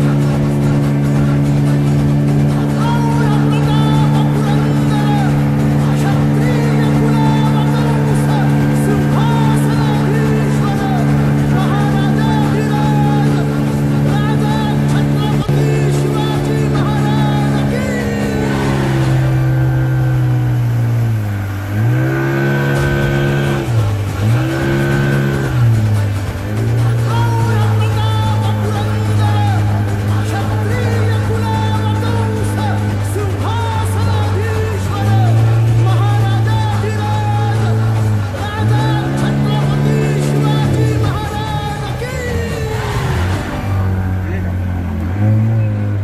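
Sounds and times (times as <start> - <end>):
small boat engine droning: 0.0 - 46.0.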